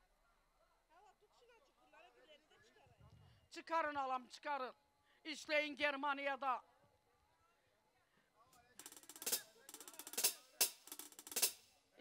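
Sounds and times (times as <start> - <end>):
drum rolls and hits: 8.8 - 11.7.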